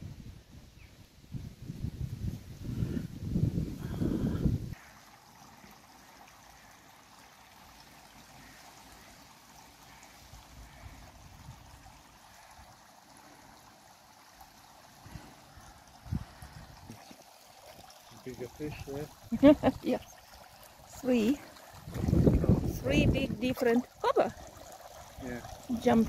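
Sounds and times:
fountain water trickling: 0.8s - 26.0s
low rumble on microphone: 1.3s - 4.8s, 21.8s - 23.5s.

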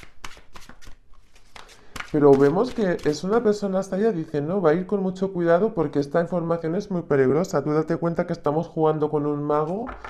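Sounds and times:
cards clicking and rustling: 0.0s - 3.2s.

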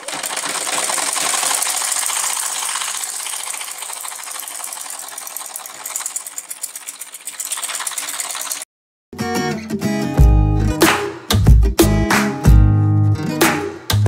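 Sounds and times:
sewing machine clattering: 0.0s - 8.7s.

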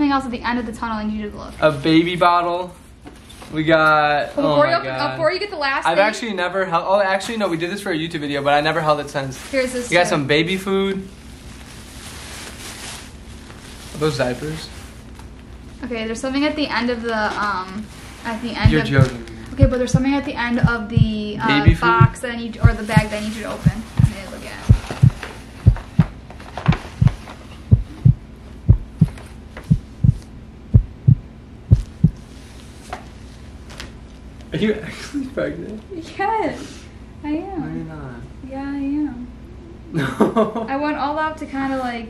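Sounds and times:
plastic bag rustling: 8.5s - 15.9s, 16.9s - 20.0s, 22.7s - 27.8s
heartbeat thumps: 18.6s - 32.3s.

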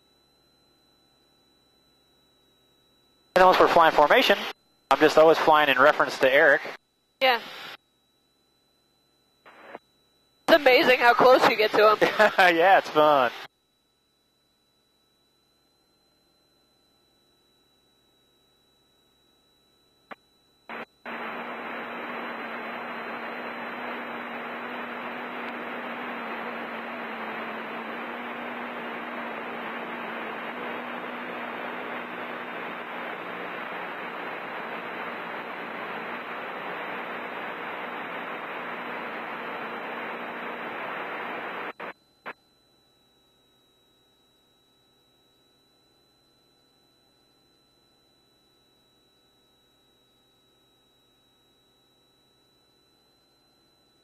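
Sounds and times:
steady high-pitched tone: 0.0s - 54.0s
headset intercom hiss: 3.4s - 7.8s, 10.5s - 13.5s.

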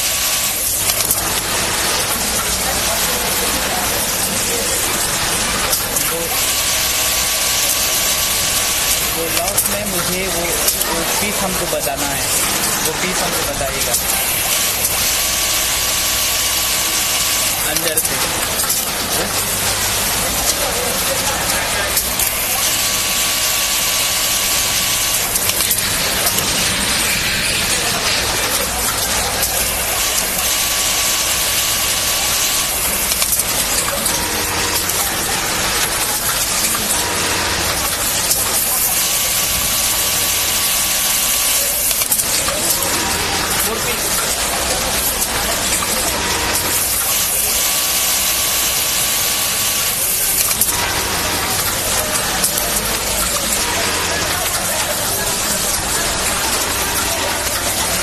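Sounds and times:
constant background noise: 0.0s - 58.0s
sewing machine whirring: 0.0s - 58.0s.

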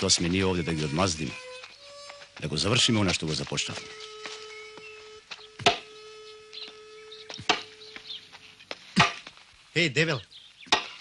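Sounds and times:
faint steady held tone: 3.8s - 8.2s
axe blows on wood: 5.6s - 6.0s.

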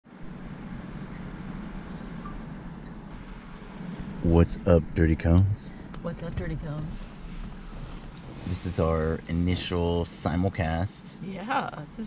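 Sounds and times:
truck cabin low rumble: 0.1s - 12.0s.

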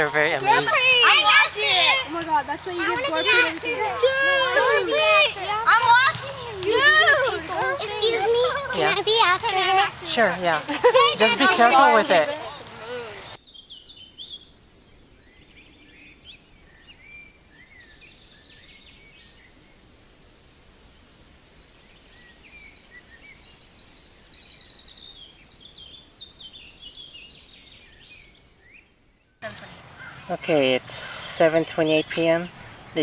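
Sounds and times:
small birds chirping: 0.0s - 19.9s, 21.5s - 33.0s
faint outdoor hiss: 0.0s - 33.0s.

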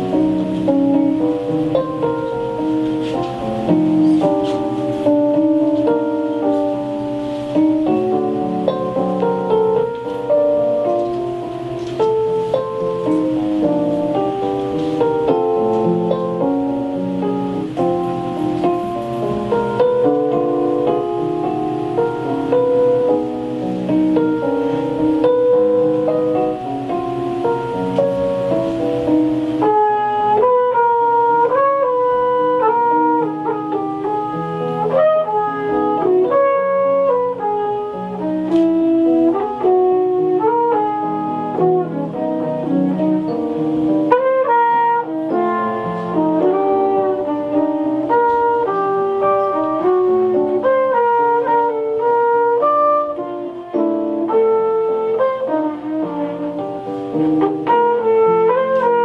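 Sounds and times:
digital piano chords: 0.0s - 59.0s
flugelhorn jazz melody: 0.0s - 59.0s.

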